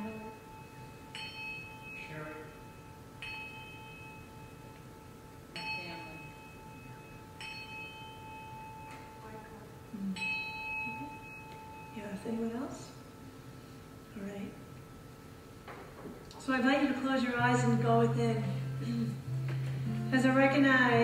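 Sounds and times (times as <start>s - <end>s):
brass hand bell dings: 0.6s - 9.2s.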